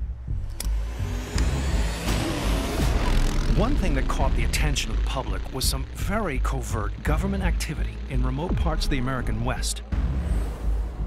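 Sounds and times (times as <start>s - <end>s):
dune buggy engine running: 0.4s - 11.0s.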